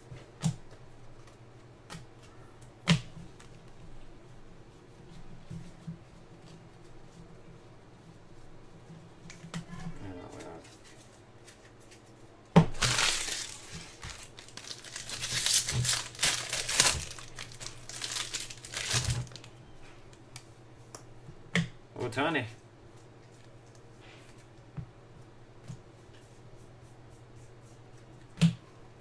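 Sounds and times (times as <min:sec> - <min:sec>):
foil pack tearing open: 0:12.7 - 0:19.5
crinkling wrapper: 0:12.7 - 0:20.2.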